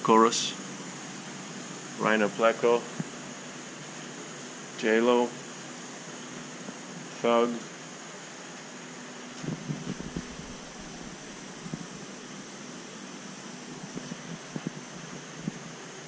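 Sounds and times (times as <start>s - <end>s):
equipment hiss and hum: 0.0s - 16.0s.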